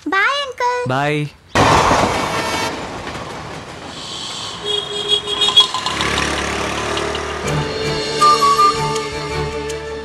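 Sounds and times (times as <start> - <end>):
engine and road noise: 1.6 - 10.0
held horn tone: 4.6 - 9.4.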